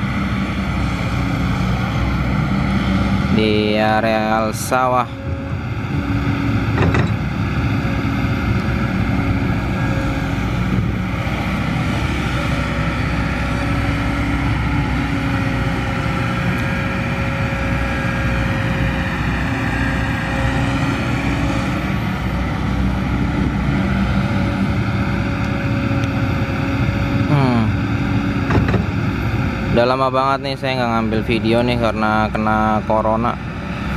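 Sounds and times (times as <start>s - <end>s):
excavator diesel engine running: 0.0s - 33.9s.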